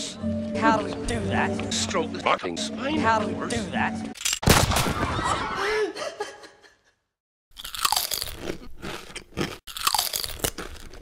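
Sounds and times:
creature snapping and chomping: 0:07.6 - 0:11.0.

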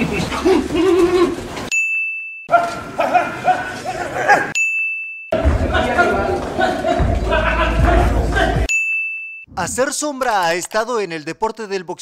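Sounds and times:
bright ding chime: 0:04.6 - 0:05.4.

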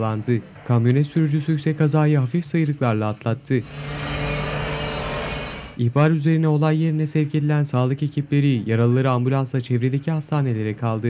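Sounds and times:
street traffic noise: 0:00.0 - 0:05.9
vehicle engine humming: 0:03.6 - 0:05.8.

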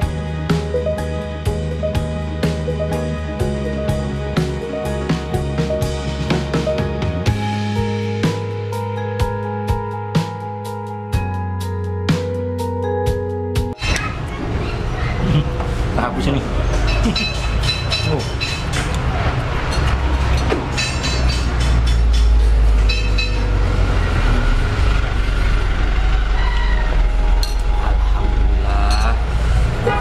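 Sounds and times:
road traffic engine rumble: 0:13.8 - 0:30.0
heavy vehicle passing: 0:14.0 - 0:30.0.

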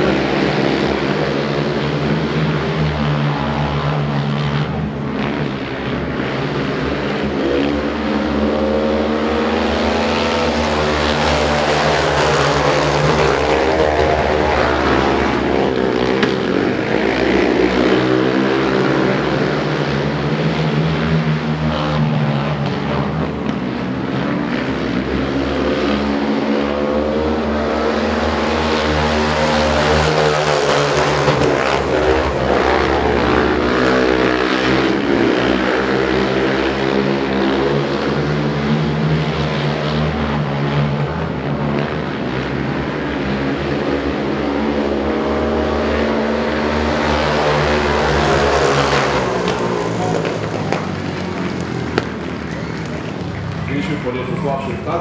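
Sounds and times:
racing quad engines: 0:00.0 - 0:55.0.

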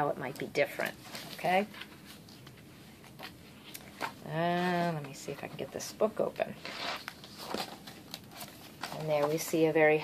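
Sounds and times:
paper pages rustling: 0:06.6 - 0:10.0.

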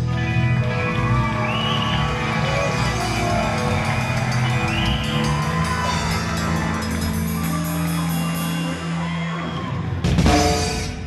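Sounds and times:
drum kit: 0:00.0 - 0:08.9, 0:09.7 - 0:11.0
keyboard: 0:00.0 - 0:11.0.

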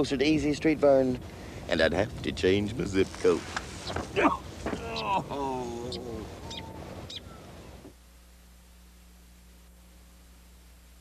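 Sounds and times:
faint outdoor background: 0:00.0 - 0:11.0
man's drawn-out vocal oh: 0:04.2 - 0:06.4
high bird chirps: 0:05.9 - 0:07.5.

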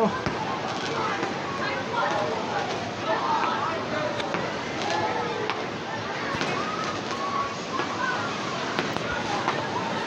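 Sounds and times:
distant voices: 0:00.0 - 0:10.0
fireworks bangs and pops: 0:08.7 - 0:09.7.

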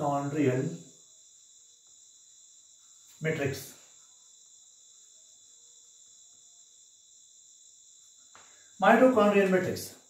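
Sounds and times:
man speaking: 0:03.2 - 0:03.8, 0:08.8 - 0:10.0.

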